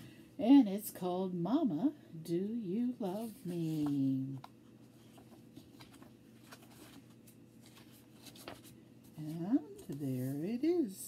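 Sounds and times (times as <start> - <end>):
book pages being turned: 3.1 - 10.5.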